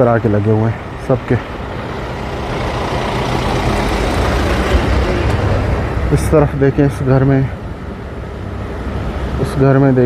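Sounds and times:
truck engine rumbling: 0.0 - 9.6.

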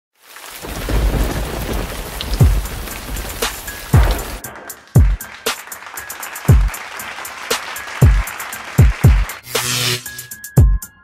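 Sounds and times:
rain hissing: 0.2 - 4.5
deep thunder booms: 0.6 - 5.1.

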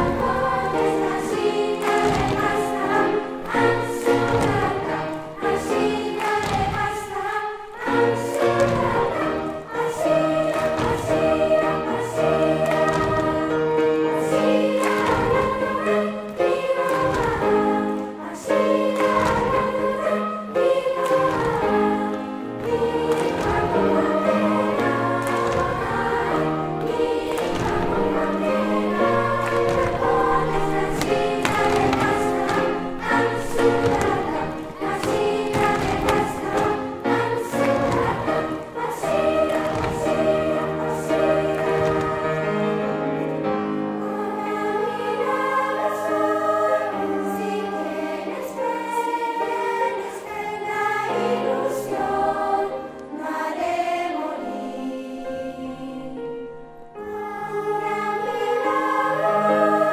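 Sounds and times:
children's choir singing: 0.0 - 59.9.

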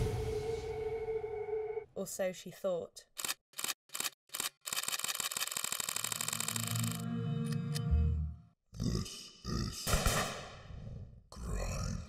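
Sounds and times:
low rumble: 0.0 - 1.8
camera shutter clicks: 3.2 - 7.0.

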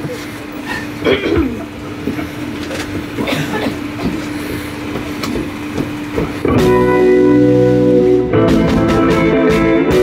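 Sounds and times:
steady low hum: 0.0 - 10.0
band playing: 6.4 - 10.0.

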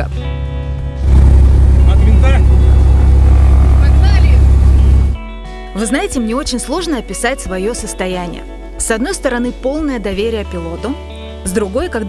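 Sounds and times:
propeller aircraft engine running: 1.0 - 5.2.

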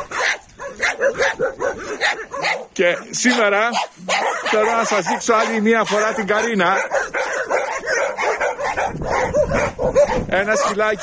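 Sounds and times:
dogs barking and yipping: 0.0 - 11.0.

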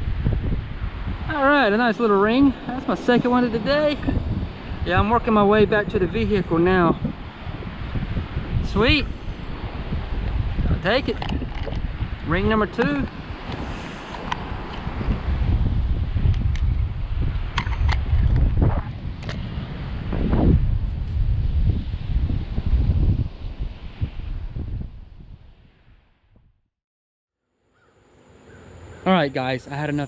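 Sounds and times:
wind buffeting microphone: 0.0 - 26.5.

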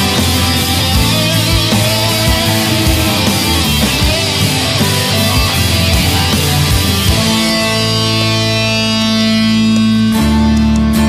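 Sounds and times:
bass and drums: 0.0 - 11.0
guitar chord ringing: 0.0 - 11.0.

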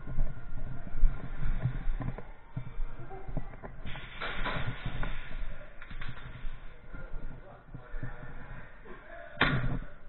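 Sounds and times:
footsteps: 0.0 - 10.0
indistinct voices: 0.0 - 10.0.

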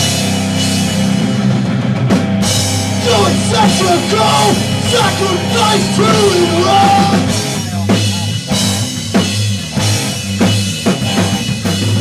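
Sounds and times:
bass guitar: 0.0 - 12.0
drum kit with cymbals: 0.0 - 12.0
electric guitar: 0.0 - 12.0.

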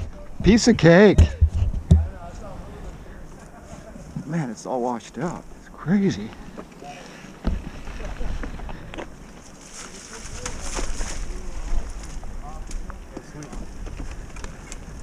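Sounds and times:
wind rumbling on microphone: 0.0 - 4.3, 7.3 - 15.0
faint voices: 0.0 - 15.0
tyres crunching over dirt: 0.0 - 15.0
bike rattles and clicks: 6.5 - 15.0.

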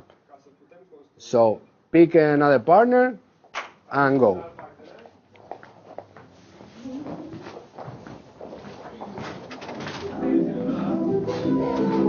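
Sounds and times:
footsteps on dance floor: 4.5 - 10.2
music: 10.1 - 12.0.

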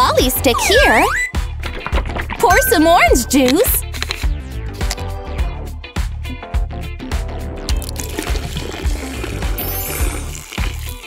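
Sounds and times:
background music with steady beat: 0.0 - 7.9
juice trickling into mould: 7.7 - 11.0.

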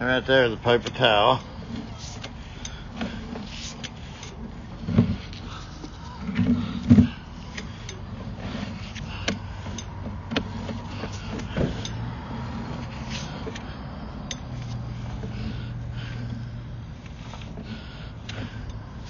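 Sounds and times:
low mechanical hum: 0.0 - 19.0
push cable being pulled back: 0.7 - 19.0.

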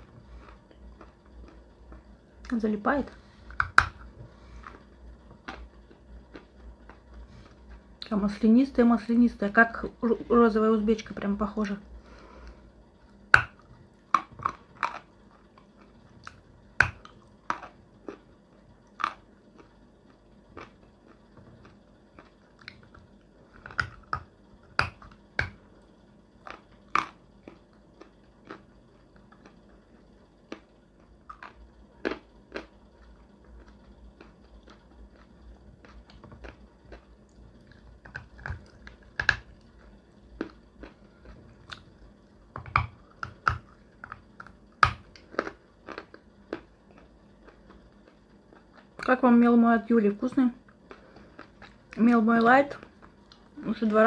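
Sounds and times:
crunching and chewing clay: 0.0 - 8.1, 11.0 - 49.2, 50.6 - 53.6.

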